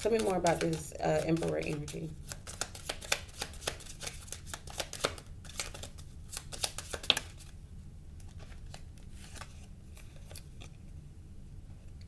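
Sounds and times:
cards being shuffled: 0:00.0 - 0:07.6, 0:08.2 - 0:10.8.

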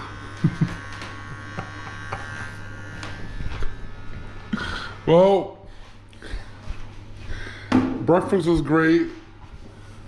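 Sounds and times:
electric hair clippers buzzing: 0:00.0 - 0:05.3.

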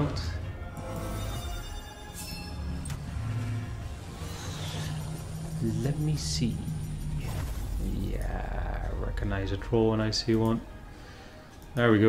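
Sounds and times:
low droning background music: 0:00.0 - 0:12.0.

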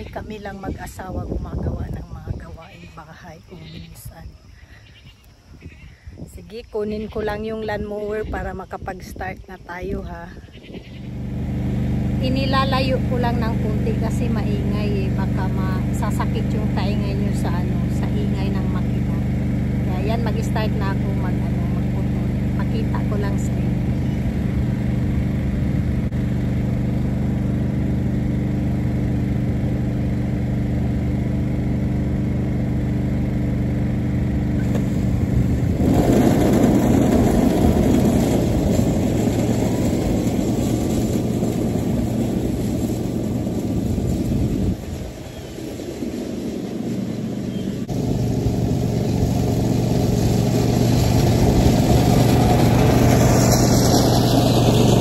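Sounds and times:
riding lawn mower engine: 0:00.0 - 0:55.0.

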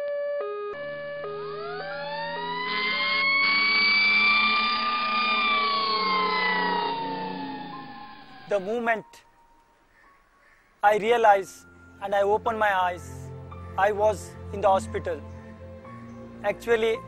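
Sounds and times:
siren wail: 0:00.0 - 0:09.4
two-tone hi-lo siren: 0:00.0 - 0:09.5.

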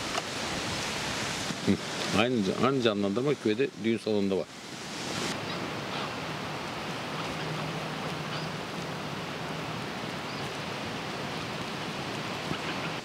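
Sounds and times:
wind through trees: 0:00.0 - 0:13.0.

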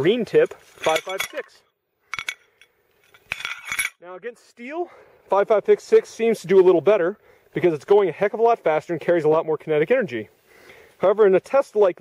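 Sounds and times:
ceramic tiles clinking: 0:00.8 - 0:01.5, 0:02.1 - 0:04.0.

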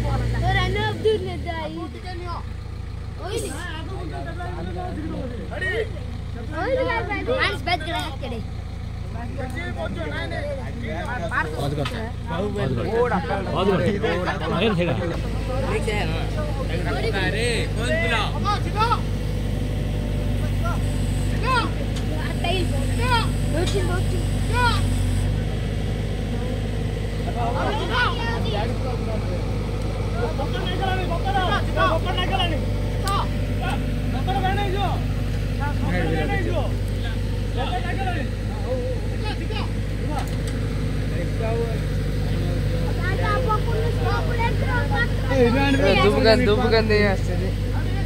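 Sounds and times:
diesel engine running: 0:00.0 - 0:48.0
people calling and talking: 0:00.0 - 0:48.0.

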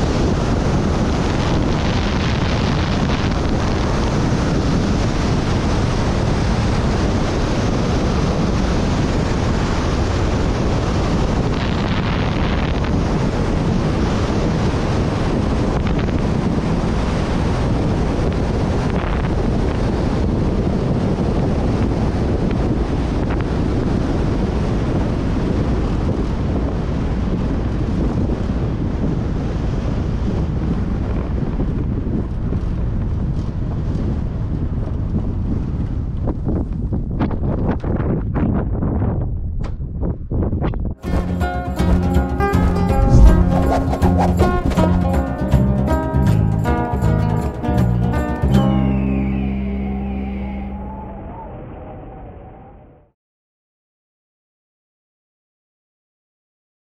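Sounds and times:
wind rushing on microphone: 0:00.0 - 0:53.1.

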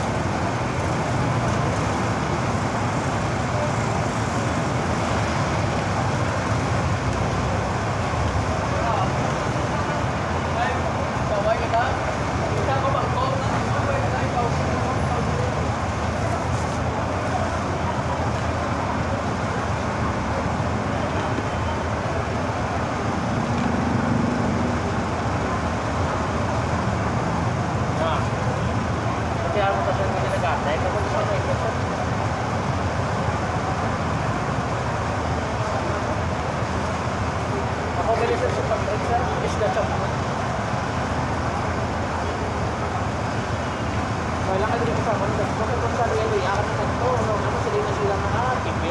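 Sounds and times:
street traffic noise: 0:00.0 - 0:48.9.

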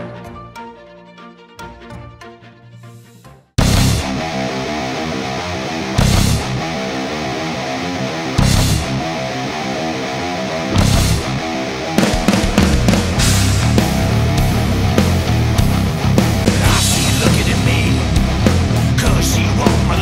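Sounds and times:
heavy metal song: 0:03.6 - 0:20.0
crash cymbal accents: 0:12.0 - 0:15.8.

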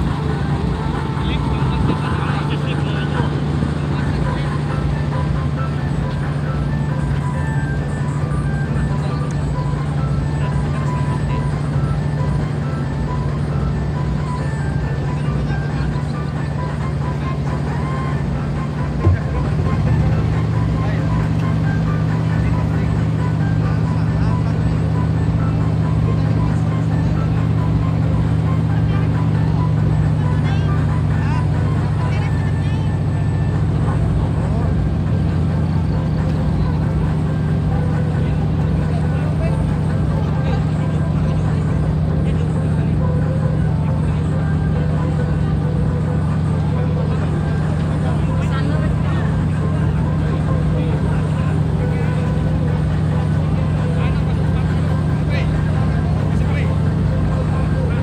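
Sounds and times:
boat engine running: 0:00.0 - 0:58.0
music: 0:00.0 - 0:58.0.

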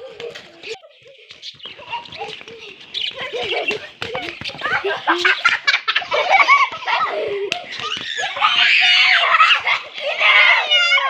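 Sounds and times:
young children calling out: 0:07.6 - 0:11.0.

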